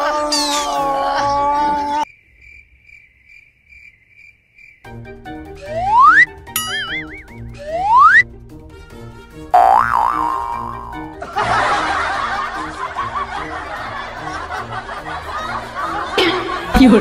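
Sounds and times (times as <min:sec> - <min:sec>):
light rhythmic background music: 0:04.9 - 0:17.0
slide whistle swoops: 0:05.6 - 0:08.2
wobbling boing: 0:09.6 - 0:11.1
burst of laughter: 0:11.2 - 0:16.7.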